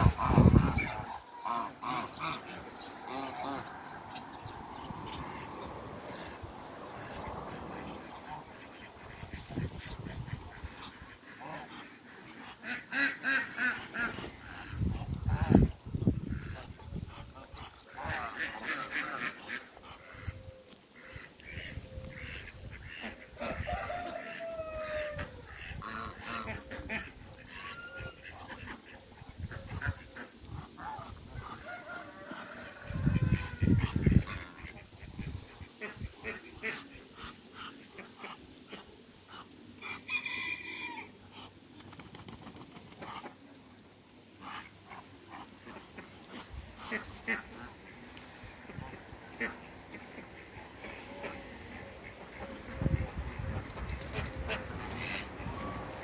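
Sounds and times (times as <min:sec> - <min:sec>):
geese and ducks calling: 0:00.0 - 0:41.8, 0:42.9 - 0:56.0.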